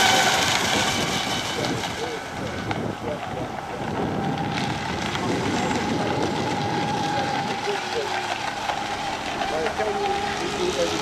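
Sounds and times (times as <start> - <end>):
rc boat motor whine: 0.0 - 11.0.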